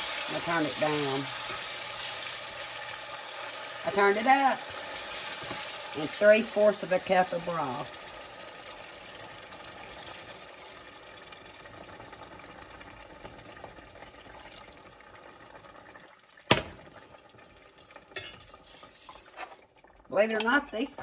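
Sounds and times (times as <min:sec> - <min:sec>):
broth frying hiss in pan: 0:00.0 - 0:19.7.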